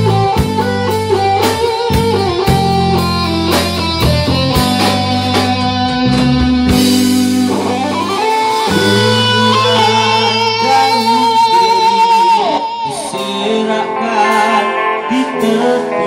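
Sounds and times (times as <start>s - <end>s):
drums: 0.0s - 16.0s
electric guitar vibrato notes: 0.0s - 16.0s
second guitar: 0.0s - 16.0s.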